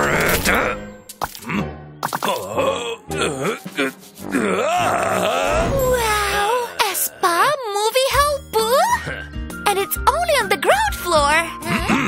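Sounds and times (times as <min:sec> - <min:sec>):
background music: 0:00.0 - 0:12.0
man groaning and grunting: 0:01.5 - 0:06.8.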